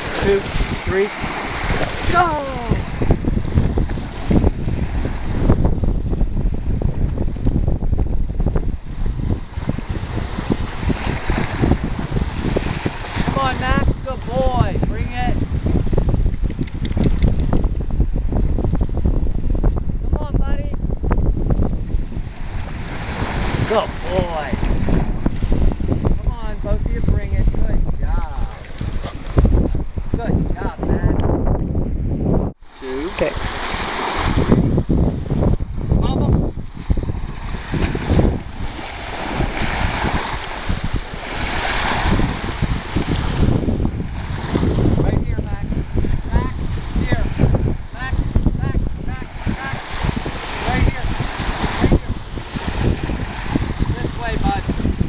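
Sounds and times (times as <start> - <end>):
waves washing onto sand: 0.0 - 19.1, 21.7 - 30.9, 32.6 - 55.0
choppy sea water: 0.0 - 55.0
wind buffeting microphone: 0.0 - 55.0.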